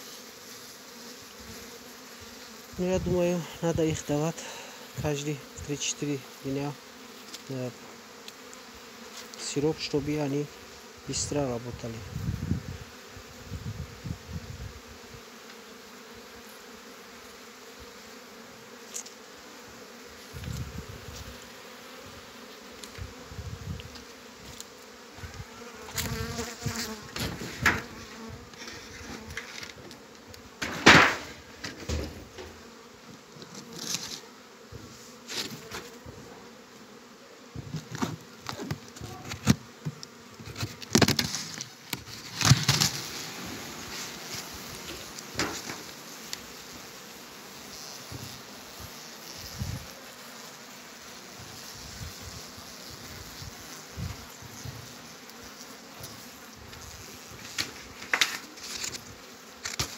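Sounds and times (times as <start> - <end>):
honeybees buzzing: 0.0 - 59.9
wooden hive boxes knocking: 25.9 - 28.6, 30.6 - 32.7, 44.1 - 46.0.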